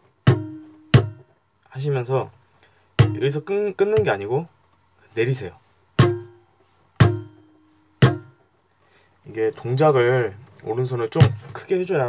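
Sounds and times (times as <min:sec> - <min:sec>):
palm-muted acoustic guitar strokes: 0:05.2 - 0:08.4.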